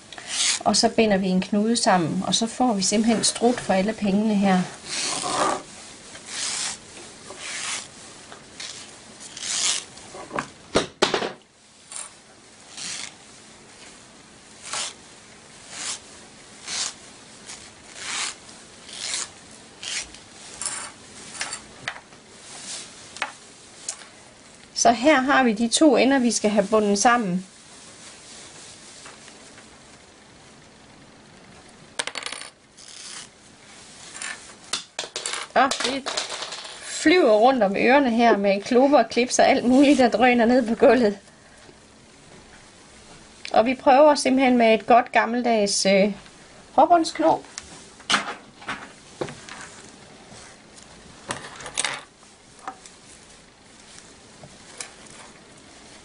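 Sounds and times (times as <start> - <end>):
tulle fabric rustling and swishing: 2.7 - 10.2, 11.7 - 23.9, 25.3 - 30.0, 36.9 - 41.2, 49.0 - 51.3, 52.2 - 56.0
netting rustling: 4.8 - 10.1, 12.6 - 21.7
clips clattering on hard floor: 35.0 - 36.8.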